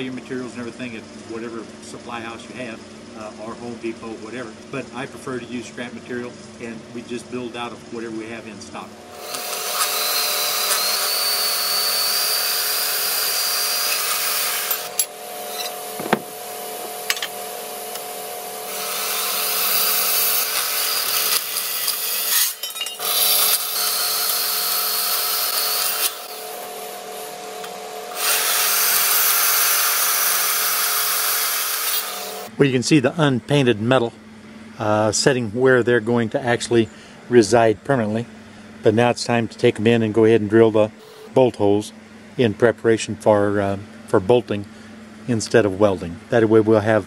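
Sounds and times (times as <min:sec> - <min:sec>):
band saw motor hum: 0:00.7 - 0:35.3
saw blade cutting steel: 0:09.2 - 0:16.0, 0:18.0 - 0:32.5.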